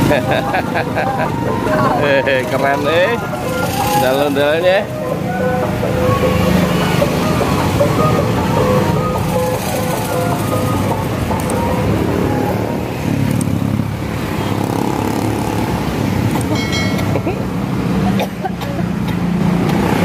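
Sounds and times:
motorcycle engines rumbling: 0.0s - 20.0s.

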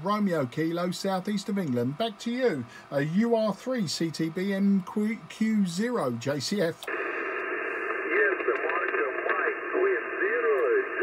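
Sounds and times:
radio band hiss: 0.0s - 11.0s
faint distant radio voice: 3.1s - 11.0s.

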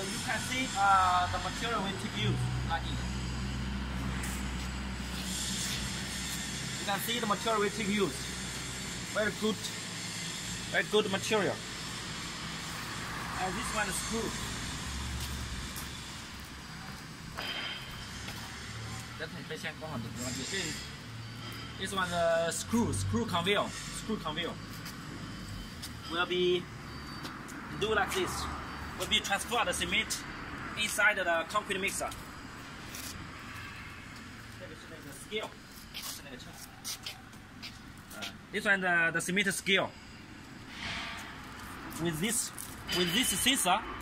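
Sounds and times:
machinery or traffic hum: 0.0s - 44.0s.

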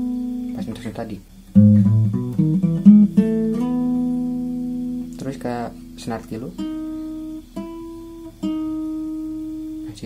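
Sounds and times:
fingerpicked acoustic guitar notes: 0.0s - 10.0s.

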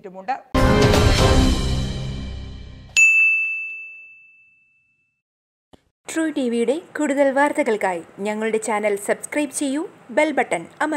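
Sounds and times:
bright bell-like chime: 2.9s - 5.2s.

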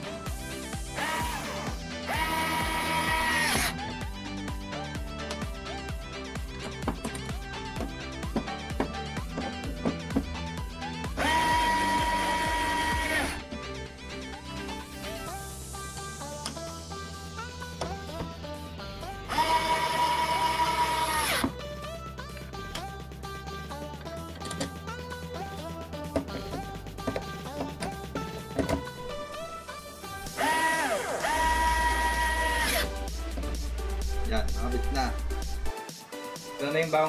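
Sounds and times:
background music: 0.0s - 37.0s
electric screwdriver whining: 0.9s - 3.9s, 11.1s - 13.5s, 19.3s - 21.6s, 30.3s - 33.1s.

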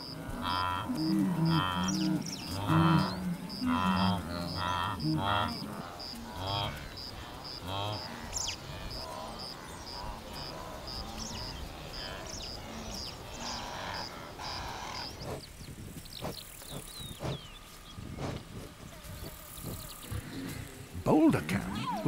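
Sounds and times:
wildebeest grunting and calling: 0.0s - 15.4s, 16.2s - 22.0s.

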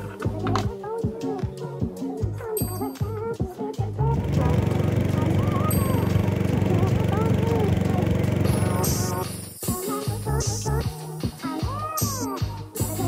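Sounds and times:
boat engine running: 4.2s - 9.4s.

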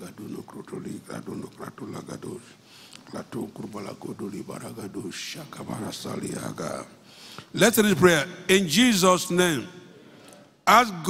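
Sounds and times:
breathy hiss: 2.4s - 3.9s, 6.9s - 7.6s.

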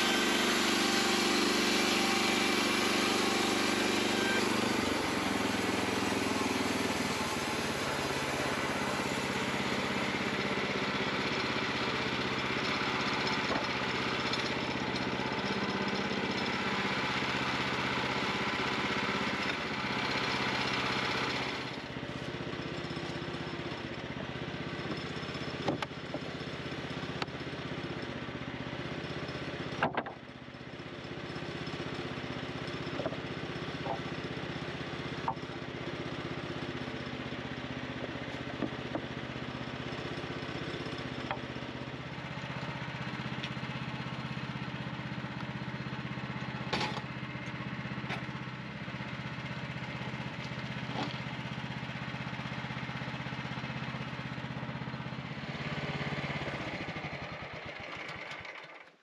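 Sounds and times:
small gas engine running: 0.0s - 59.0s
wooden boards knocking: 29.8s - 30.2s.

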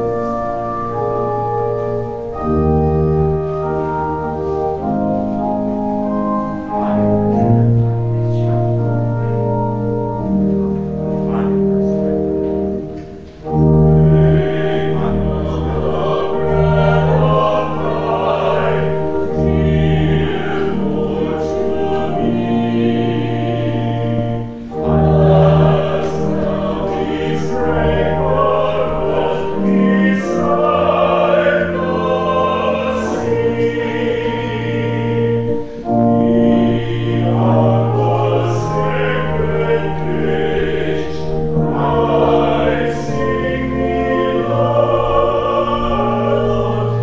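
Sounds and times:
organ accompaniment: 0.0s - 47.0s
singers performing a hymn: 0.0s - 47.0s.

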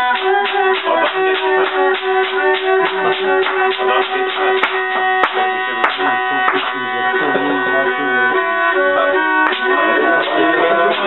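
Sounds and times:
wooden clapper clacks: 0.0s - 6.8s
hand claps: 0.0s - 7.5s, 9.4s - 11.0s
bowed fiddle dance tune: 0.0s - 11.0s
voices singing: 0.0s - 11.0s.

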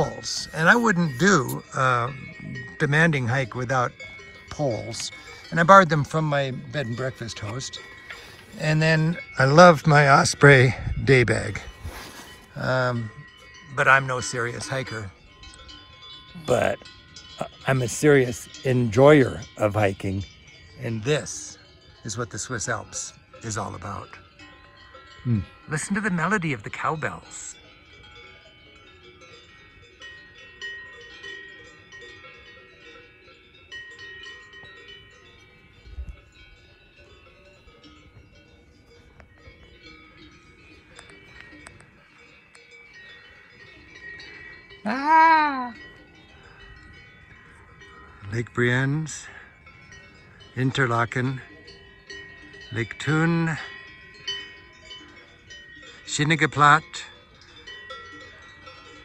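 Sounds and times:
cowbells ringing: 0.0s - 59.0s.

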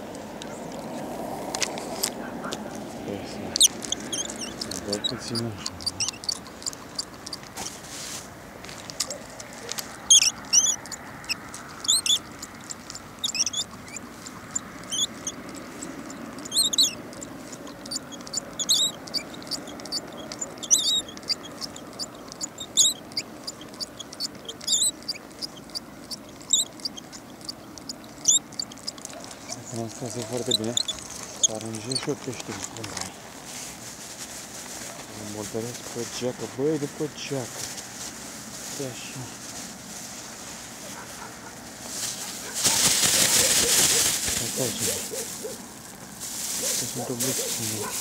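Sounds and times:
birds chirping: 0.0s - 33.5s, 34.4s - 48.0s.

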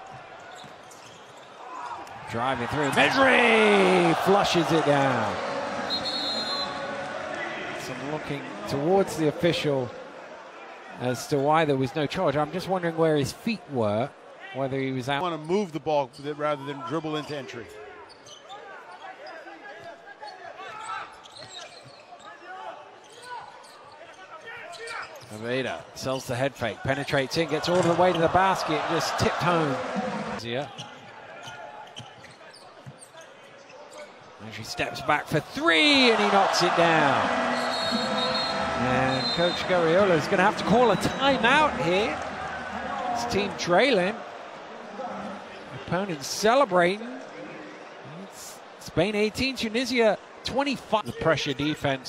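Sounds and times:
sneaker squeaks on hardwood: 0.5s - 1.6s, 20.8s - 22.3s, 30.7s - 33.3s, 37.5s - 39.6s
arena crowd murmur: 2.2s - 11.2s, 27.4s - 30.4s, 34.9s - 46.2s.

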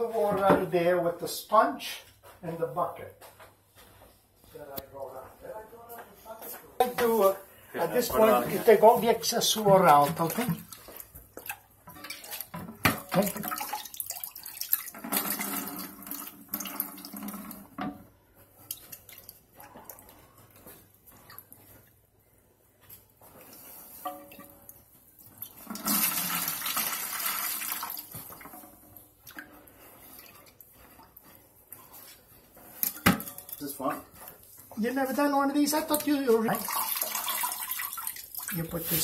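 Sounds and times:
water sloshing and trickling: 8.2s - 39.0s.

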